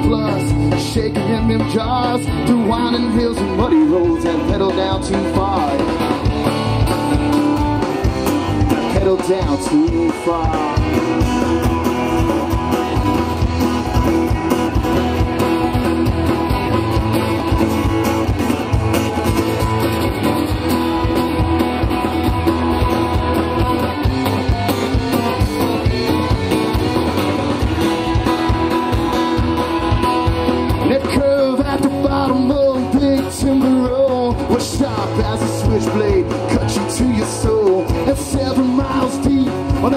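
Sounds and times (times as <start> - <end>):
country-rock band playing: 0.0 - 39.9.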